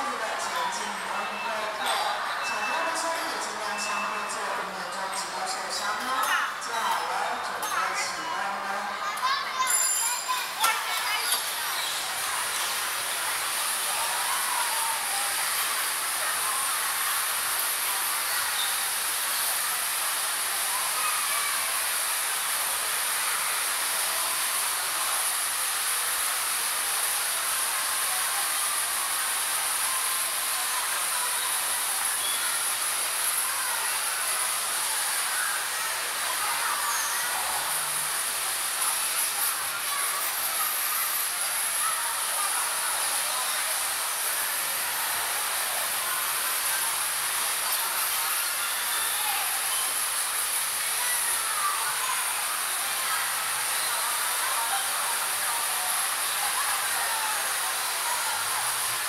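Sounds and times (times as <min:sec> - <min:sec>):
faint voices: 0:00.0 - 0:59.0
bumper cars hissing din: 0:36.8 - 0:51.0.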